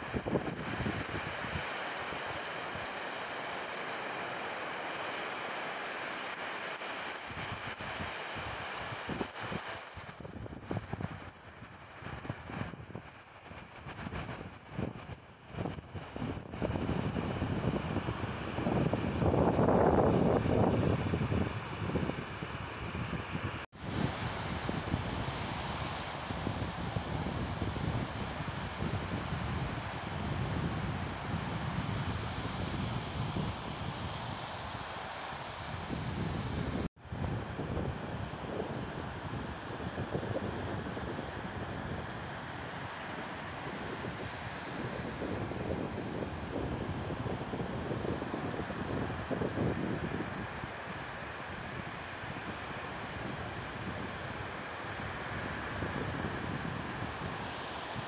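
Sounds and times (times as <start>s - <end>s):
wind rumbling on microphone: 0.0s - 3.0s, 7.1s - 58.0s
small waves breaking on sand: 0.0s - 58.0s.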